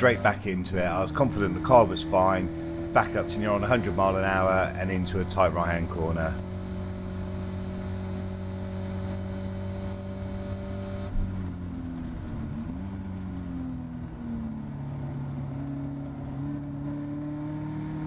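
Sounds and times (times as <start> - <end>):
race car engine at high revs: 0.0 - 18.0.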